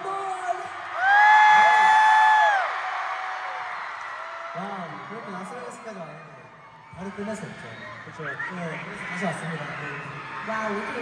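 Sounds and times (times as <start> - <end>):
concert crowd cheering: 0.0 - 11.0
high whoop: 1.0 - 3.6.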